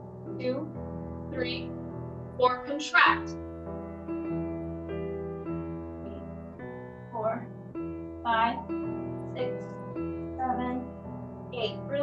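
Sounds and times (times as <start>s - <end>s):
piano chords: 0.0s - 12.0s.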